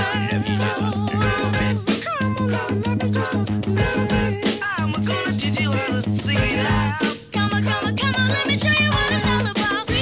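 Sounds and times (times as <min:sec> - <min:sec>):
upbeat music with bass beat: 0:00.0 - 0:10.0.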